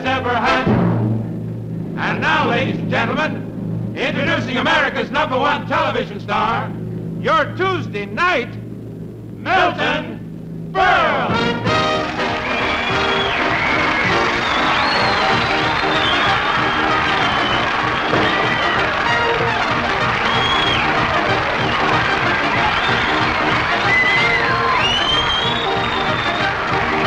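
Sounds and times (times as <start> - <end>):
band playing entrance music: 0.0 - 27.0
audience applauding and cheering: 10.8 - 27.0.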